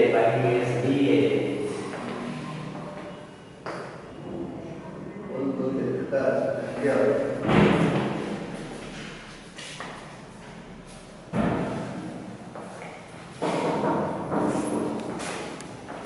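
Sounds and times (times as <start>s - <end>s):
heavy thump in echoing room: 7.3s - 9.2s, 11.2s - 12.2s, 13.4s - 15.5s
noisy knock: 7.4s - 8.4s, 11.3s - 12.1s, 13.4s - 15.0s.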